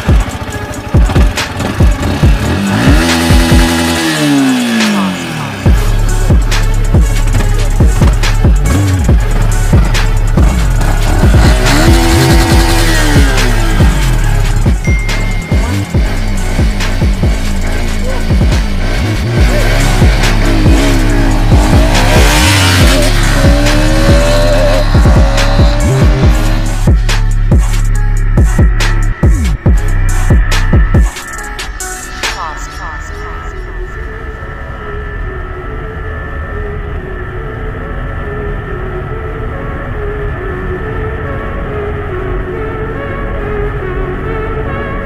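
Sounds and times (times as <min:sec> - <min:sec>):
motorcycles revving and pulling away: 0:00.0 - 0:27.1
electronic music with deep bass: 0:00.0 - 0:36.0.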